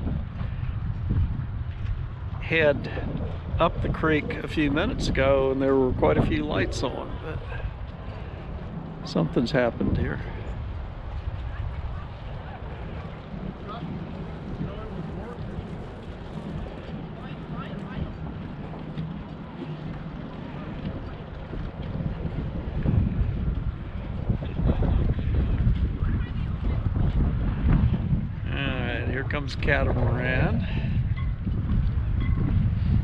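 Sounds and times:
wind buffeting microphone: 0.0 - 33.0
faint voices: 2.4 - 31.0.

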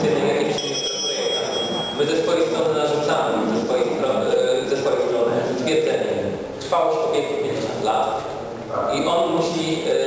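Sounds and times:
man speaking: 0.0 - 10.0
high ringing tone: 0.6 - 2.3.

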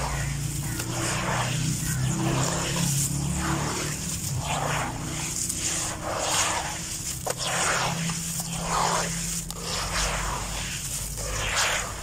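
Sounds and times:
low steady hum: 0.0 - 12.0
wet sand crunching in hands: 0.0 - 12.0.

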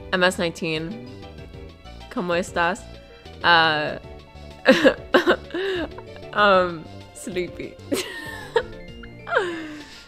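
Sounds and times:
background music: 0.0 - 10.0
woman laughing: 4.7 - 6.3, 7.9 - 10.0.

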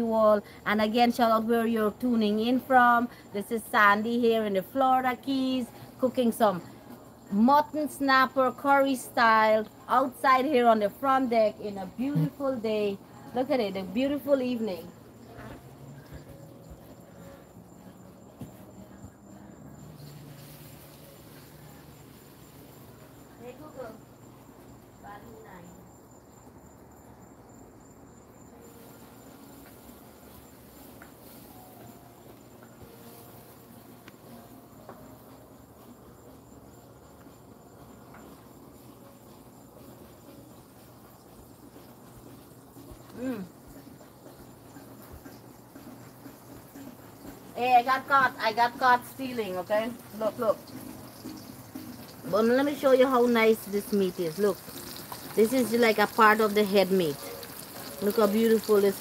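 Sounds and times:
night insects trilling: 0.0 - 59.0.

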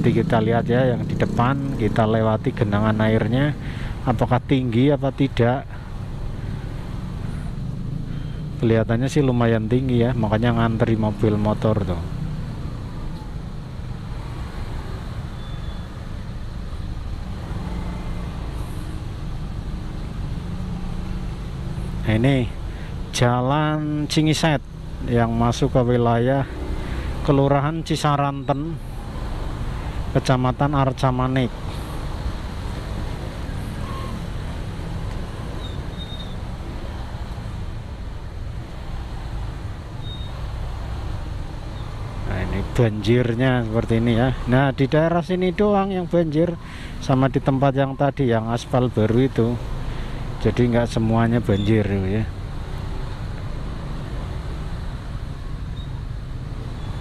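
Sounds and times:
idling engines in traffic: 0.0 - 57.0.

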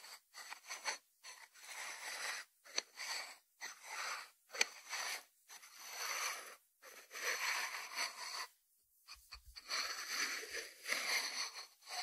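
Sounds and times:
ceramic lid scraping on wood: 9.6 - 12.0.

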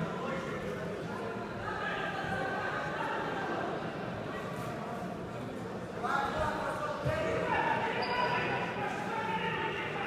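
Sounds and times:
voices shouting in a hall: 0.0 - 4.6, 5.8 - 10.0.

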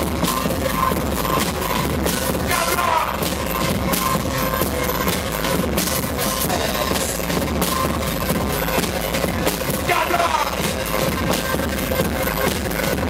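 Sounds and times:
drum kit: 0.0 - 13.0
electric guitar: 0.0 - 13.0.

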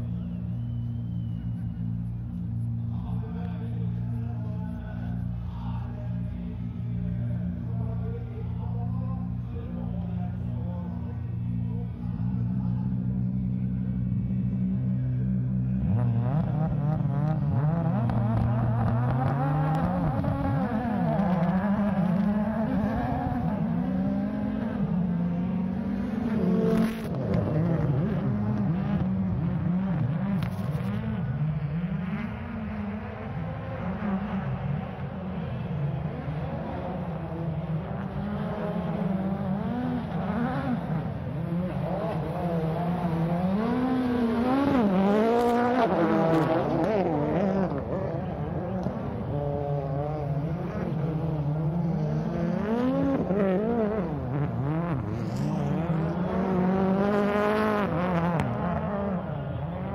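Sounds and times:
rally car engine revving: 0.1 - 59.9.

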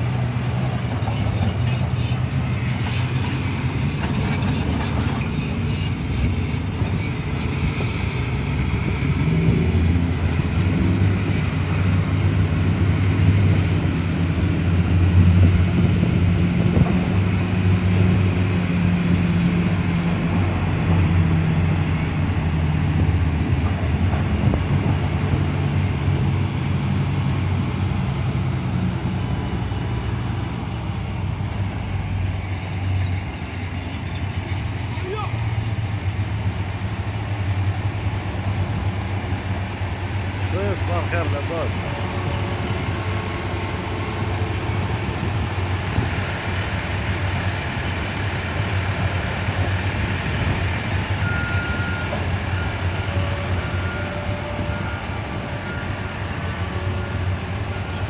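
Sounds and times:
large diesel engine droning: 0.0 - 58.0.

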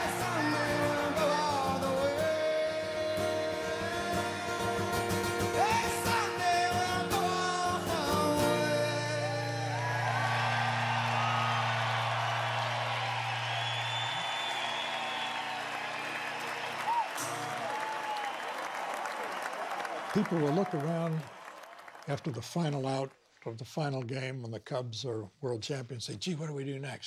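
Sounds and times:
crowd whoops: 0.0 - 2.3, 9.1 - 22.1
man singing: 0.0 - 10.0
acoustic guitar: 0.0 - 14.2, 17.1 - 17.7
crowd cheering and applauding: 0.0 - 22.7.

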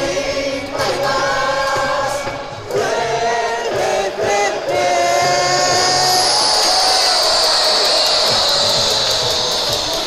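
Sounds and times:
crowd noise: 0.0 - 10.0
crowd singing: 0.0 - 10.0
balloons whistling: 6.0 - 10.0.

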